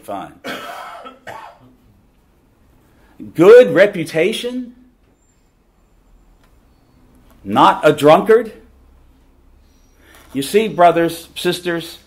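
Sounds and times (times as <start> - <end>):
person coughing: 0.4 - 1.8.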